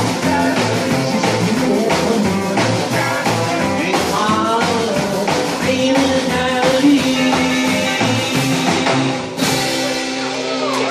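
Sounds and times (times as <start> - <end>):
acoustic guitar: 0.0 - 10.9
drum kit: 0.0 - 10.9
upright double bass: 0.0 - 10.9.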